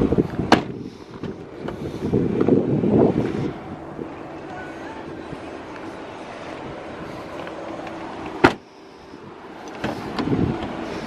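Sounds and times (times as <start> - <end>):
car door handling noise: 0.3 - 2.6, 7.8 - 8.7, 9.7 - 10.8
car door slamming shut: 0.5 - 1.4, 8.4 - 8.6.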